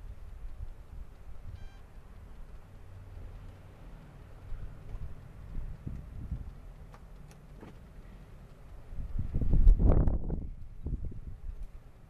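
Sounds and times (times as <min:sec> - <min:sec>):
short steady beep: 0:01.5 - 0:02.0
wind buffeting microphone: 0:04.5 - 0:06.7, 0:08.8 - 0:11.8.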